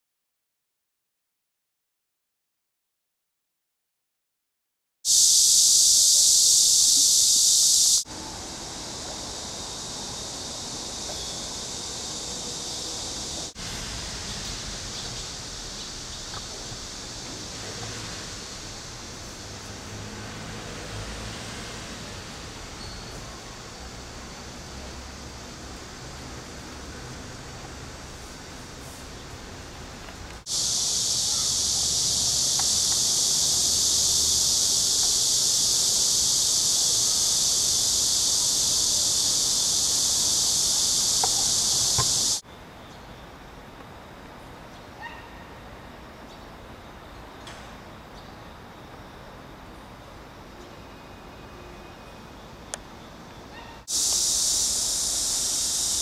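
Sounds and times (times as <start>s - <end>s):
high-pitched insect drone: 5.1s - 28.0s, 30.4s - 42.4s, 53.8s - 56.0s.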